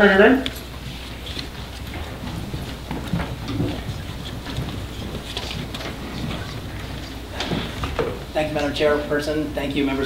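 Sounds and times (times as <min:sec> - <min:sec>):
paper handling: 0:00.4 - 0:08.3
footsteps on hard floor: 0:00.5 - 0:08.3.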